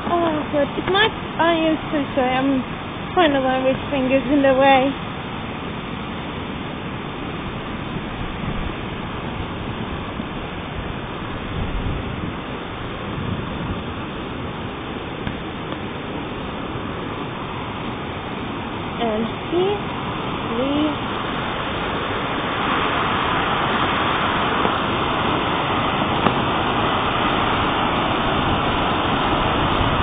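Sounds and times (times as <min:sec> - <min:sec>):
waterfall roaring: 0:00.0 - 0:30.0.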